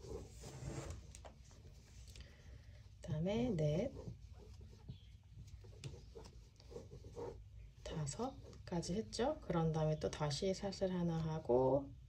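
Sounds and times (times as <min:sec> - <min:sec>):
crochet hook rubbing yarn: 0:03.2 - 0:08.8.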